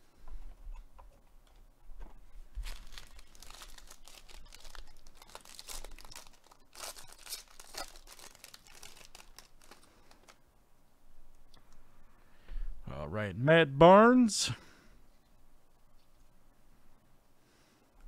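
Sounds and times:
foil wrapper tearing and crinkling: 0:02.6 - 0:10.4.

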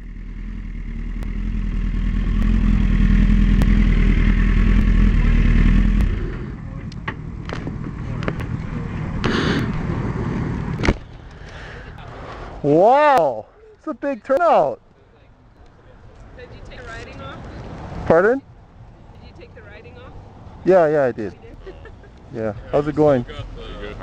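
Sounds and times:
motorcycle engine running: 0:00.0 - 0:06.8.

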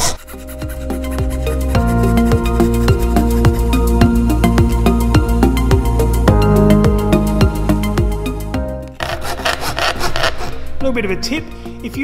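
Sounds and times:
background music: 0:00.0 - 0:12.0
coping saw cutting plywood: 0:09.0 - 0:10.6.

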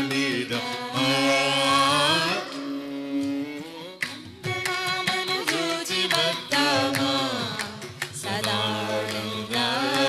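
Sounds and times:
voices singing devotional song: 0:00.0 - 0:03.8, 0:04.9 - 0:10.0.

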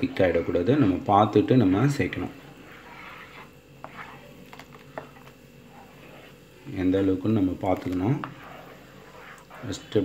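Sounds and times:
spatula stirring gravy in pan: 0:00.0 - 0:10.0
steady low hum: 0:00.0 - 0:10.0.

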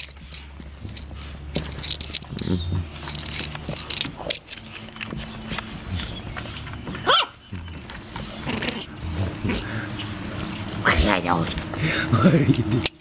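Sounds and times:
puppies scuffling and chewing: 0:00.0 - 0:13.0
puppy yelp: 0:05.9 - 0:07.5.

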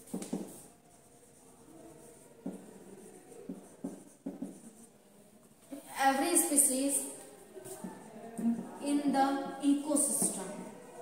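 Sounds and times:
marker pen writing on whiteboard: 0:00.0 - 0:11.0
marker tip tapping board: 0:00.1 - 0:00.6, 0:02.4 - 0:02.7, 0:03.5 - 0:04.7.

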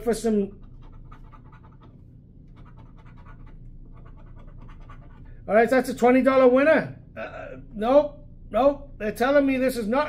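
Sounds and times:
coin scratching a ticket: 0:00.4 - 0:05.3.

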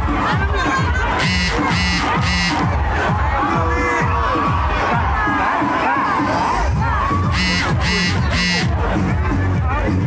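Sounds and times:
crowd cheering and shouting: 0:00.0 - 0:10.0
dance music with bass beat: 0:00.6 - 0:05.3, 0:07.3 - 0:09.9
shrill high notes: 0:01.2 - 0:02.6, 0:07.3 - 0:08.7.

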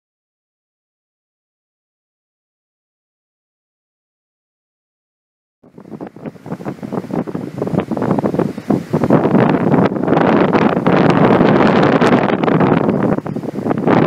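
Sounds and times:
wind buffeting microphone: 0:05.6 - 0:14.0.

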